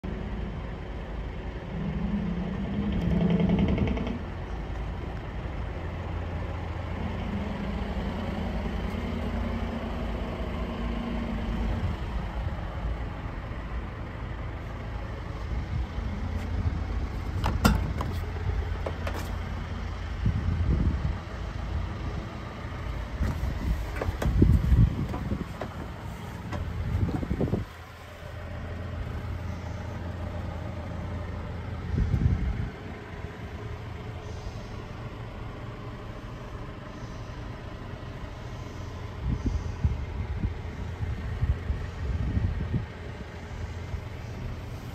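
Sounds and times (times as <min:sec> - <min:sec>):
tractor diesel engine idling: 0:00.0 - 0:44.9.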